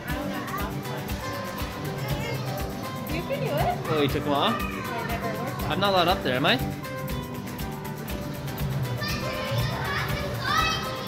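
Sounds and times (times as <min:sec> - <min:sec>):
children calling and squealing: 0:00.0 - 0:05.7, 0:08.7 - 0:11.0
background music: 0:00.0 - 0:11.0.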